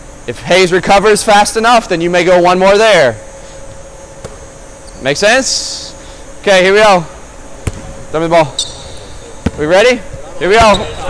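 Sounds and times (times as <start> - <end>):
faint hiss with hum: 0.0 - 11.0.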